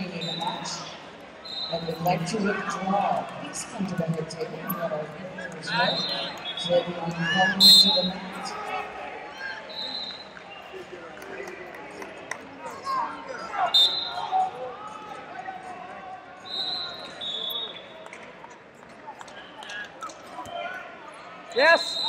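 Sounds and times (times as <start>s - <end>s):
echoing voices in a hall: 0.0s - 22.0s
referee's whistle: 1.4s - 2.2s, 5.7s - 8.3s, 9.5s - 10.4s, 13.7s - 14.4s, 16.4s - 18.0s, 21.6s - 22.0s.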